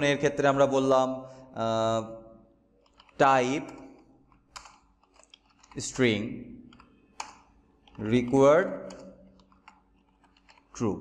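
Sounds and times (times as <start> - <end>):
keyboard keystrokes: 2.8 - 5.8, 6.7 - 10.8.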